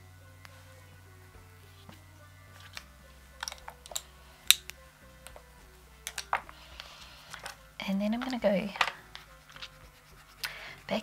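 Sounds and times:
quiet background music: 0:00.0 - 0:11.0
small objects clicking and tapping: 0:02.6 - 0:05.4, 0:06.0 - 0:07.6, 0:08.2 - 0:09.7.

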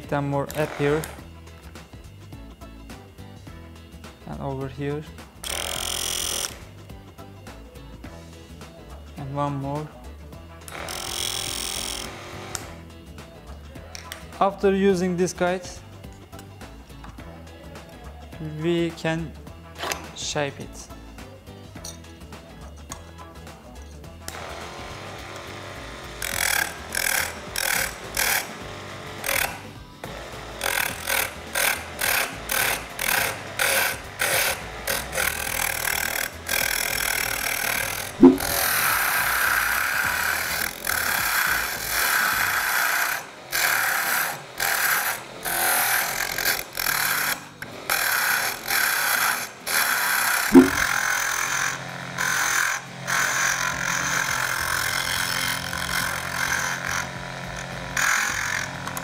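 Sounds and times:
tool scraping spinning wood: 0:30.7 - 0:47.4, 0:48.0 - 0:51.6, 0:53.2 - 0:59.0.

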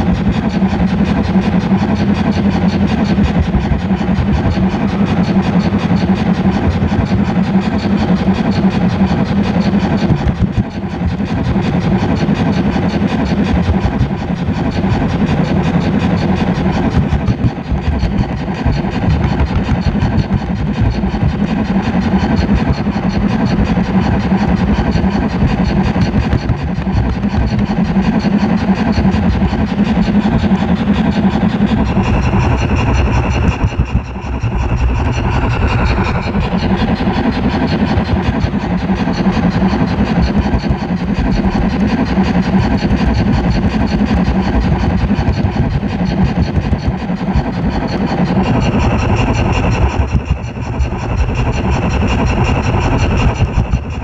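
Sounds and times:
model train wheels clattering on rails: 0:00.0 - 0:54.0.

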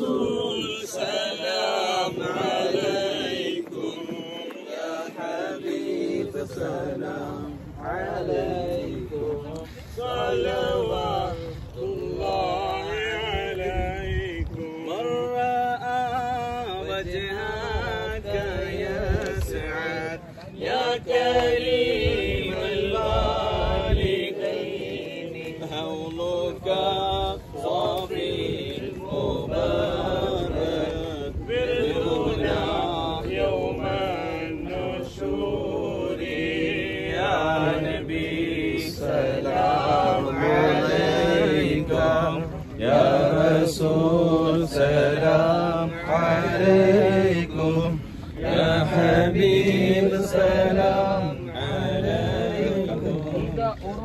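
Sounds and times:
men chanting: 0:00.0 - 0:54.0.

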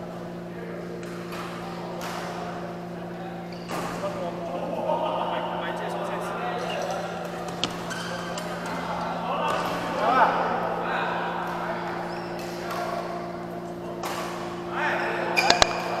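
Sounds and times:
steady low hum: 0:00.0 - 0:16.0
shoe squeaks on court floor: 0:06.6 - 0:08.7, 0:12.1 - 0:12.4, 0:15.0 - 0:16.0
racket hitting shuttlecock: 0:07.2 - 0:08.9, 0:15.3 - 0:16.0.

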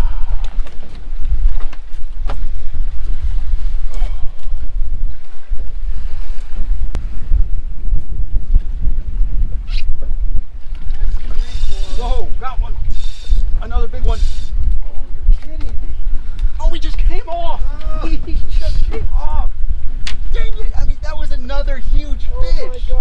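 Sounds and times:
wind buffeting microphone: 0:00.0 - 0:23.0
fishing reel drag buzzing: 0:11.3 - 0:14.6.

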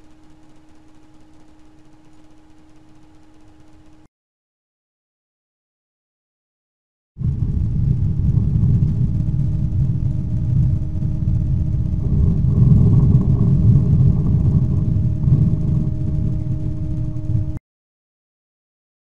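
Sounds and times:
faint steady hum: 0:00.0 - 0:04.1, 0:07.2 - 0:17.6
loud low rumble: 0:07.2 - 0:17.6.

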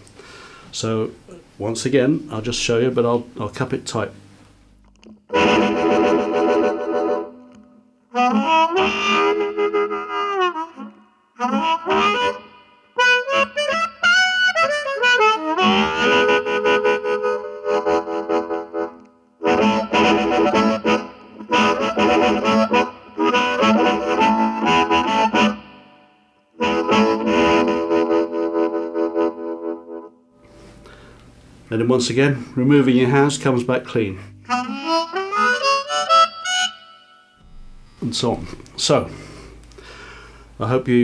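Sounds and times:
overdriven amplified harmonica: 0:04.2 - 0:31.4, 0:34.3 - 0:38.0.

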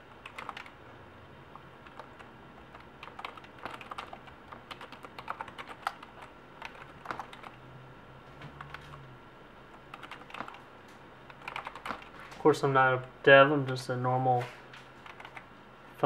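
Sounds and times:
keyboard typing: 0:00.2 - 0:00.8, 0:01.5 - 0:07.6, 0:08.4 - 0:09.0, 0:09.7 - 0:10.7, 0:11.3 - 0:12.4, 0:14.8 - 0:15.5.

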